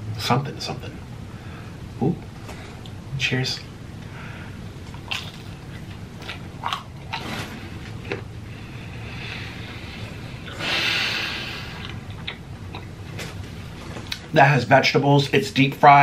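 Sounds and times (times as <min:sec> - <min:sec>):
crunchy chewing: 0:04.8 - 0:08.3, 0:11.7 - 0:14.2
wet mouth sounds: 0:04.9 - 0:07.4, 0:11.4 - 0:13.0
breath out through nose: 0:08.6 - 0:11.9.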